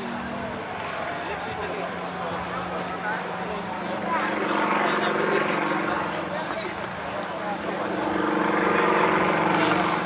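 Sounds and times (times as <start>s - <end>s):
propeller plane engine droning: 0.0s - 10.0s.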